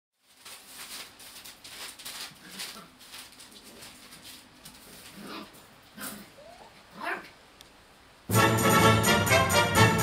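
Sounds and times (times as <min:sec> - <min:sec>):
small dog whining: 0:05.2 - 0:07.4.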